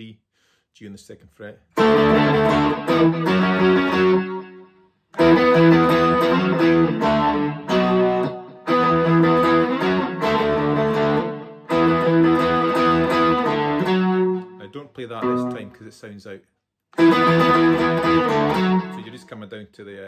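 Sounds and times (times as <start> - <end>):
electric guitar riff: 1.8 - 15.9, 17.0 - 19.3.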